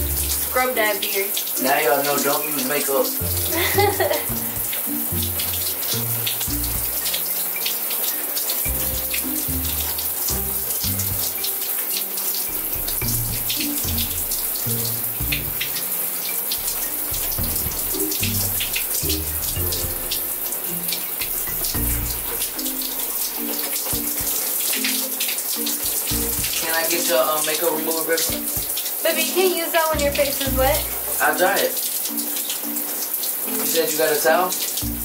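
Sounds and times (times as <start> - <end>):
background music with bass: 0.0 - 0.7, 3.2 - 7.6, 8.6 - 11.6, 12.5 - 24.4, 25.8 - 26.8, 28.3 - 28.8, 30.0 - 31.4, 34.8 - 35.0
shower water running: 0.0 - 35.0.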